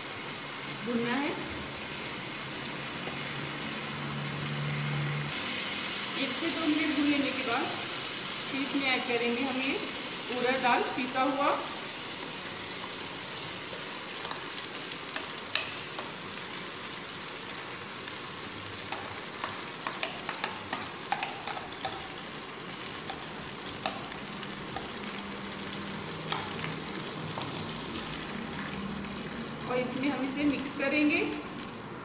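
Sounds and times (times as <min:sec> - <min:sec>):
hot oil sizzling: 0:00.0 - 0:32.0.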